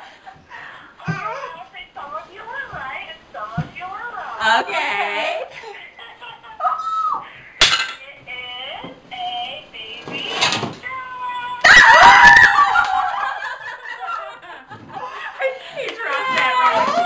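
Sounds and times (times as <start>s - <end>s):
women laughing: 5.2s - 7.5s, 11.7s - 17.0s
women's excited voices: 10.8s - 13.5s, 15.8s - 17.0s
loud excited shrieking: 11.6s - 13.0s.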